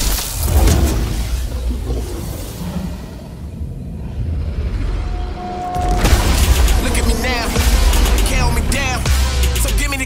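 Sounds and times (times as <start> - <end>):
deep cinematic rumble: 0.5 - 10.0.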